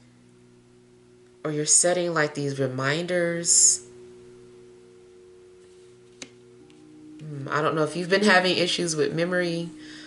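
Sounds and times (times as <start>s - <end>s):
soft held chord music: 0.0s - 10.0s.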